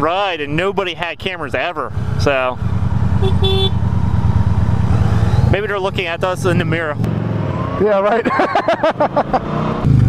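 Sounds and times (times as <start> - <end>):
motorcycle engine idling: 0.0 - 6.6
vehicle horn beeps: 3.2 - 3.8.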